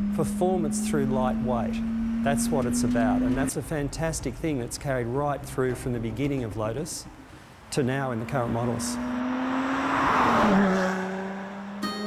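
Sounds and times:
car driving past: 8.2 - 11.8.

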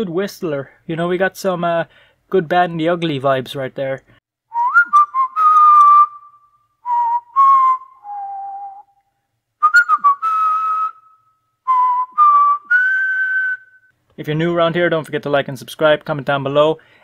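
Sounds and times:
man whistling a slow tune: 4.5 - 13.9.

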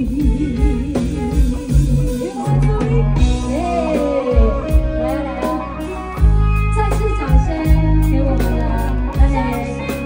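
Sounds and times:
guitar line with wavering note: 0.0 - 10.0
live band music: 0.0 - 10.0.

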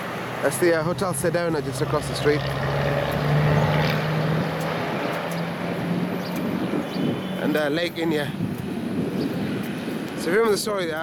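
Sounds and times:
vehicle passing with engine hum: 0.0 - 10.4.

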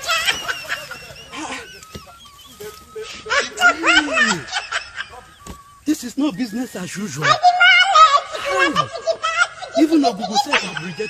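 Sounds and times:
person snickering: 0.2 - 5.3.

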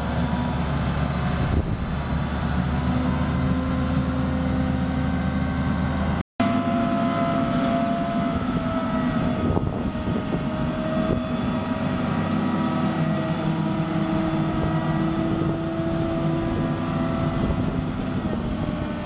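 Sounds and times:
diesel engine rumble: 0.0 - 19.0
steady whining tones: 0.0 - 19.0.

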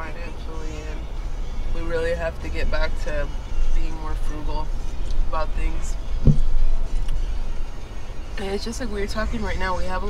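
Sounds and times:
road and engine rumble: 0.0 - 10.0
brief thump: 6.2 - 6.6.

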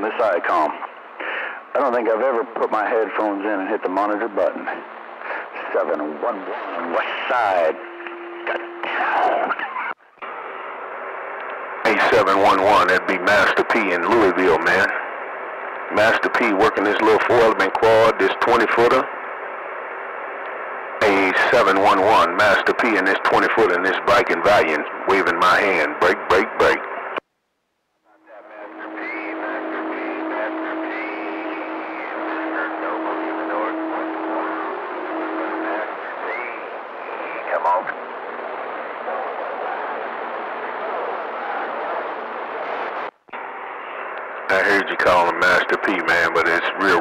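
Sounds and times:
radio static hiss: 0.0 - 47.0
radio whistling tones: 28.3 - 43.1.

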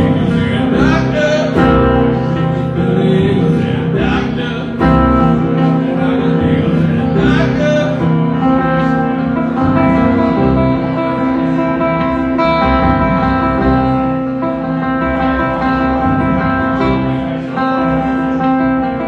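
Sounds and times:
acoustic guitar strummed and picked: 0.0 - 19.0.

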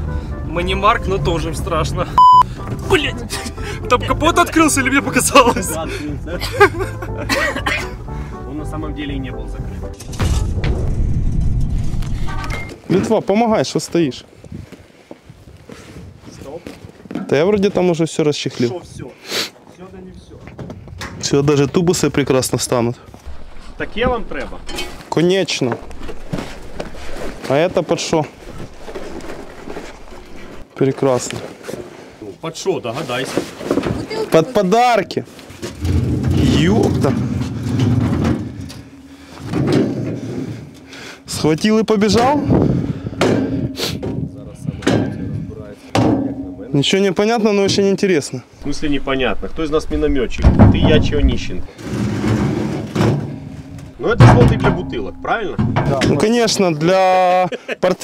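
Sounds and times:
brief pitched tone: 2.2 - 2.5
rough low vehicle rumble: 9.9 - 12.7, 23.2 - 30.7.

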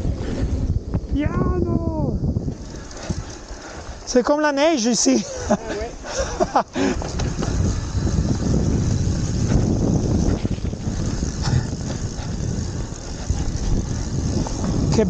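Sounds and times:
bike tyres and frame rattling: 0.0 - 15.0
wind buffeting microphone: 0.0 - 15.0.

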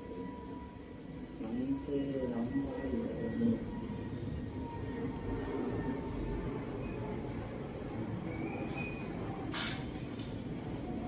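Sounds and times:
faint high whine: 0.0 - 11.0
low rumbling background noise: 0.0 - 11.0.

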